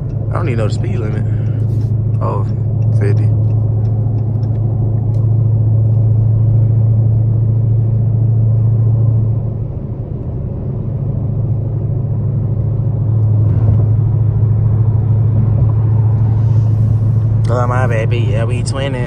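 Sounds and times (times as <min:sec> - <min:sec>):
car engine drone: 0:00.0 - 0:19.0
road noise: 0:00.0 - 0:19.0.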